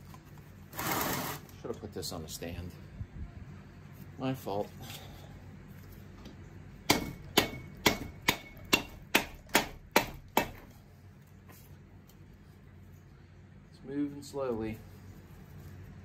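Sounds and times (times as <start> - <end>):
rubber mallet striking metal: 6.9 - 10.7.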